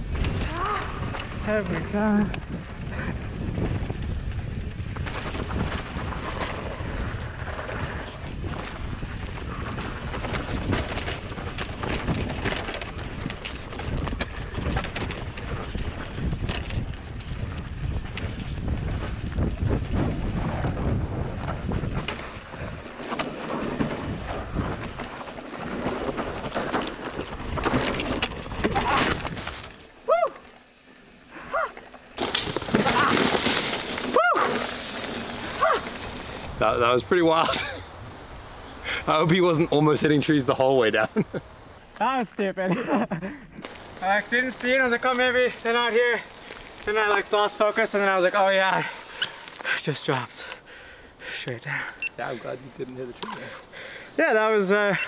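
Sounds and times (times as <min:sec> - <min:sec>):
tyre noise on dirt: 0:00.0 - 0:39.9, 0:43.6 - 0:50.7
bike frame rattle: 0:02.9 - 0:30.9, 0:31.5 - 0:36.5
knocks over roots and rocks: 0:25.6 - 0:29.8, 0:32.2 - 0:34.3
bike chain slap: 0:31.5 - 0:36.2.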